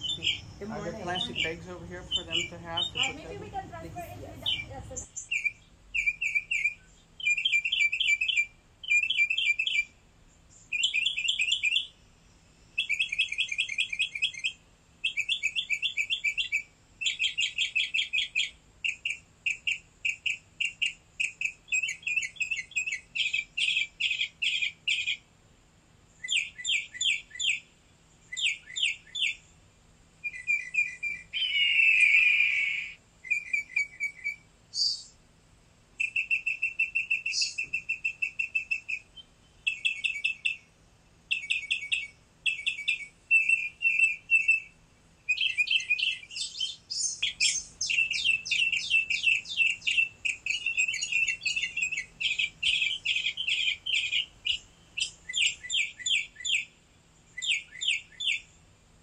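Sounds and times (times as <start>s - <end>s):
harsh bird call: 0.0s - 9.9s, 30.3s - 35.0s
small bird chirping: 0.0s - 25.3s, 26.0s - 29.6s, 30.2s - 35.2s, 36.0s - 58.6s.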